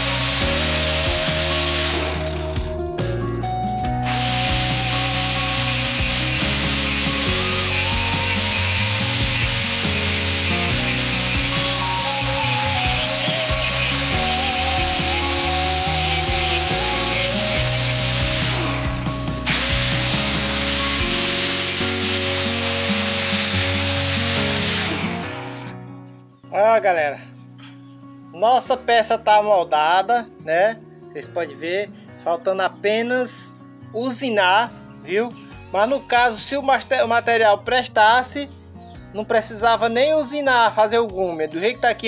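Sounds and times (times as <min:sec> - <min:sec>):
power tool grinding steel: 0:00.0 - 0:02.8, 0:03.9 - 0:25.8
background music with bass line: 0:00.0 - 0:26.2.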